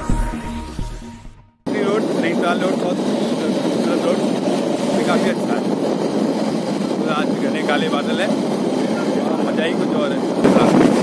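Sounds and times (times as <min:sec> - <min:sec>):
wind over microphone: 0:01.7 - 0:11.0.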